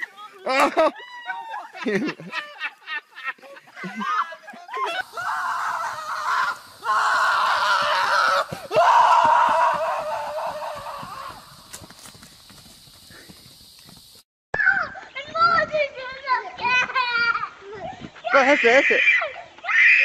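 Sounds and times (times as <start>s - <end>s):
voices: 0.0s - 11.6s
child's voice: 14.6s - 18.3s.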